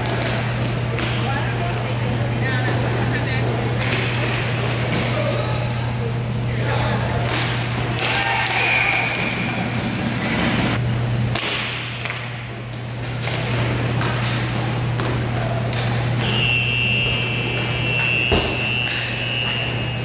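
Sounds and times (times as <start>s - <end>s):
steady low hum: 0.0s - 20.0s
hockey sticks clacking on puck: 11.3s - 16.3s.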